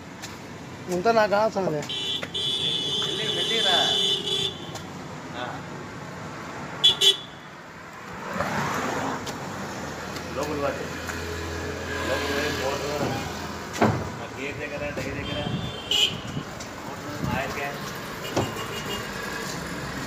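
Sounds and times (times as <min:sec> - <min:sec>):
street noise: 0:00.0 - 0:20.0
sharp knocks: 0:13.7 - 0:14.2.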